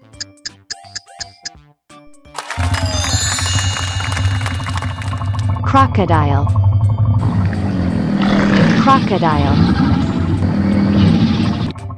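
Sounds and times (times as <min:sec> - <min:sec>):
chiming bells jingle: 0:02.4 - 0:05.6
steady low hum: 0:03.4 - 0:11.7.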